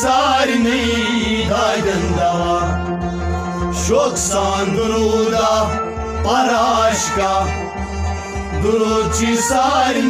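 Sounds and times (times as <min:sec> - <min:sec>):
low musical accompaniment: 0:00.0 - 0:10.0.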